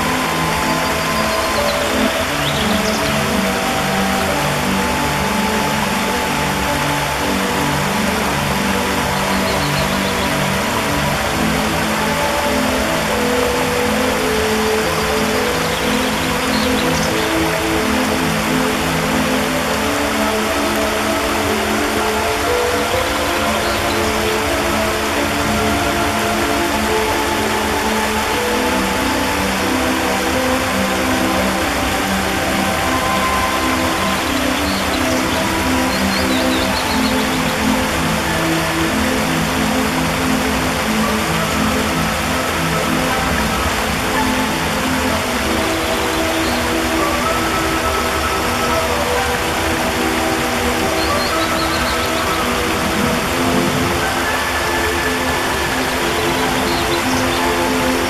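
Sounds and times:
ambient music with low notes: 0.0 - 58.0
water rushing over stones: 0.0 - 58.0.

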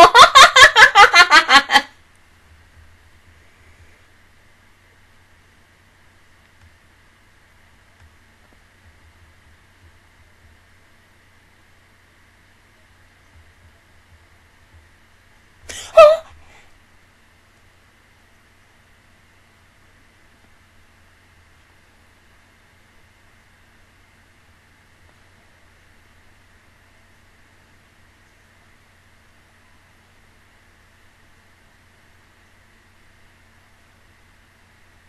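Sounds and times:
woman laughing loudly: 0.0 - 1.9, 15.7 - 16.6
faint steady hum: 0.0 - 35.0.

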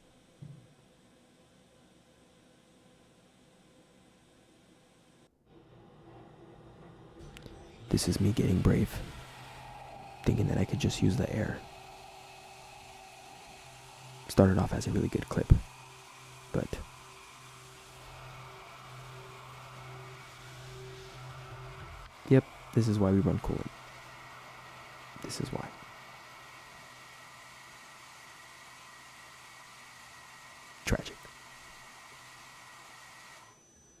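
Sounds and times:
faint high whine: 0.0 - 34.0
faint machine hum: 0.0 - 34.0
air blast hiss: 7.9 - 33.5.

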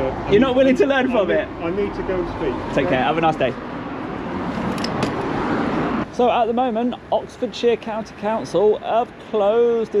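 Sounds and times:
road vehicle passing: 0.0 - 8.3.

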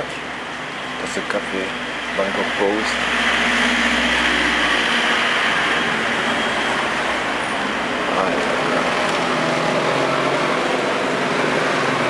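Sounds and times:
street traffic noise: 0.0 - 12.0
passing vehicle rumble: 0.2 - 12.0.

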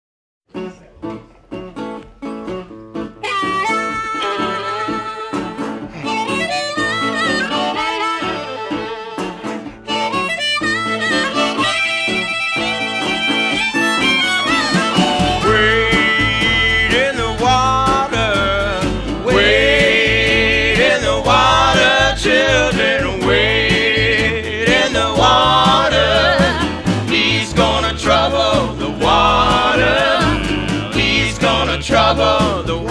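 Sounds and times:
plucked strings rhythm: 0.5 - 32.9
harmonica melody with bending notes: 3.0 - 32.9
low bass line: 15.3 - 32.9.

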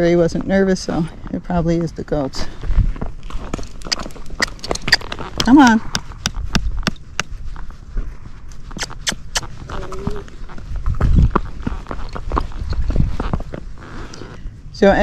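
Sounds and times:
hooves clip-clopping on pavement: 0.0 - 15.0.

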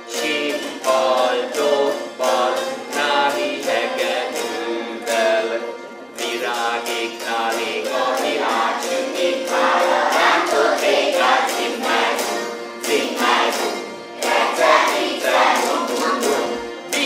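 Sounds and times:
group singing folk song: 0.0 - 17.0
zither strummed: 0.0 - 17.0.

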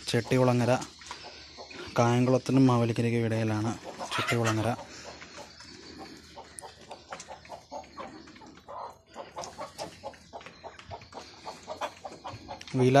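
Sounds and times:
hens clucking: 0.0 - 13.0.

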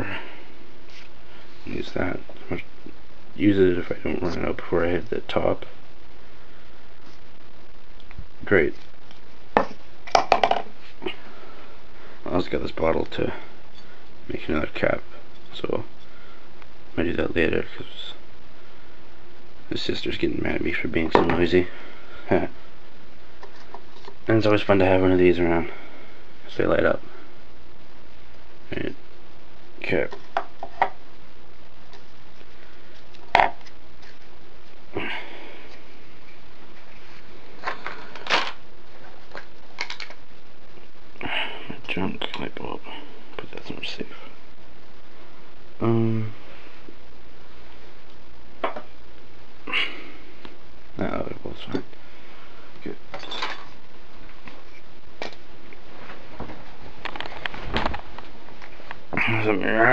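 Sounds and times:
steady background hiss: 0.0 - 59.9.

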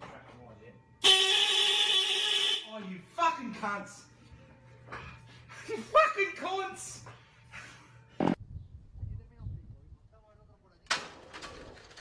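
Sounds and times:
loud horn blast: 1.0 - 2.7.

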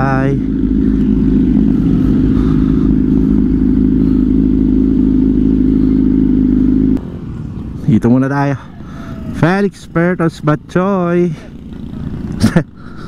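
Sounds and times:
motorcycle engine running: 0.0 - 13.0.

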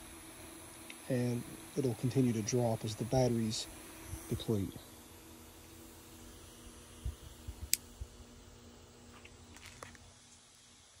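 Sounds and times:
small motor humming: 0.0 - 11.0.

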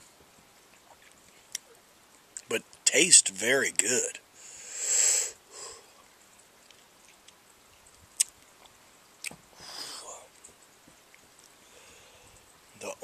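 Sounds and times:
man hissing breath: 4.4 - 5.9, 9.6 - 10.2.

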